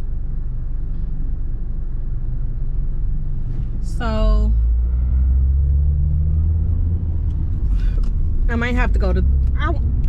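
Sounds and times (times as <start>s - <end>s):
car engine and road rumble: 0.0s - 10.0s.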